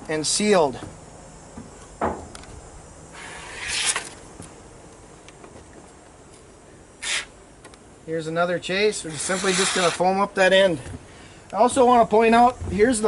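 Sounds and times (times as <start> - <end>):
short bursts of hiss: 3.1 - 4.2, 7.0 - 7.4, 9.1 - 10.0.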